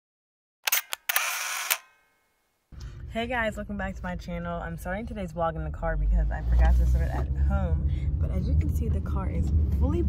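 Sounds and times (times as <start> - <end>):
camera shutter clicks: 0.6 - 2.0
mechanical shutter burst: 0.6 - 2.0.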